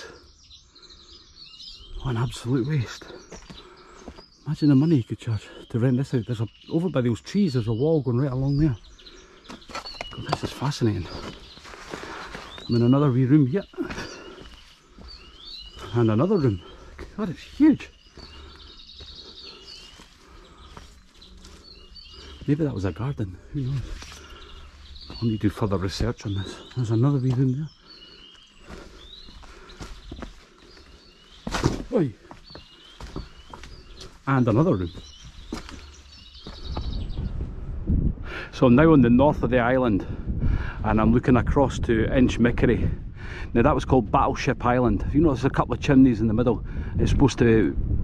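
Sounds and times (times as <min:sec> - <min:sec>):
songbird warbling: 0:00.0 - 0:37.3
small birds chirping: 0:00.0 - 0:48.0.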